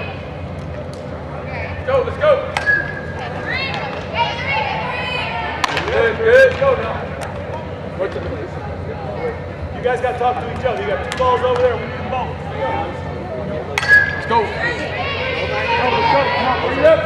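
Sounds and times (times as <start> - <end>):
steady low hum: 0.0 - 17.0
players calling out: 1.5 - 17.0.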